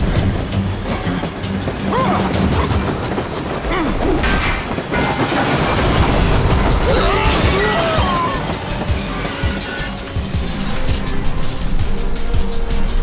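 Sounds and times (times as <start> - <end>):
film score music: 0.0 - 13.0
steam train on rails: 0.0 - 13.0.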